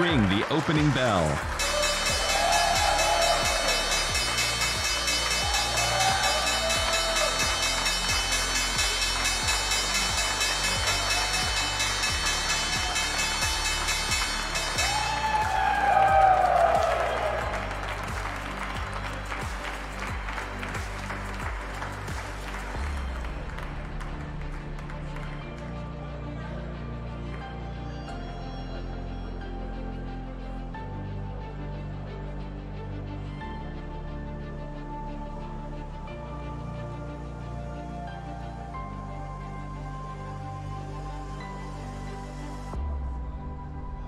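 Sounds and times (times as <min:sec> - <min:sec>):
applause: 0:00.0 - 0:26.6
people cheering: 0:00.0 - 0:26.7
electric bell ringing: 0:01.6 - 0:15.2.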